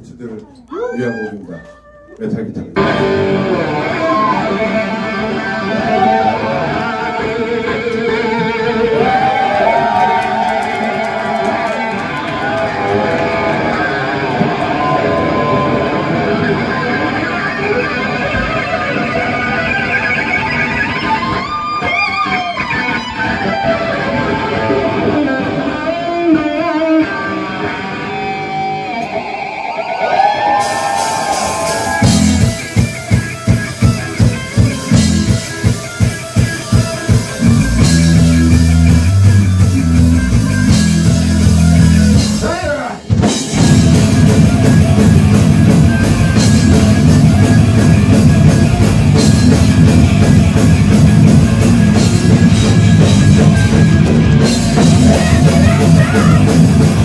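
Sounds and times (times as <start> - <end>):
bent lead guitar lines: 0.4 - 57.0
heavy metal band playing: 2.8 - 57.0.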